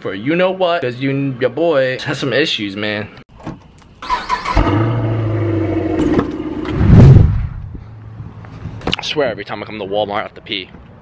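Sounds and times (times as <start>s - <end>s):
car engine starting and revving: 4.0s - 7.5s.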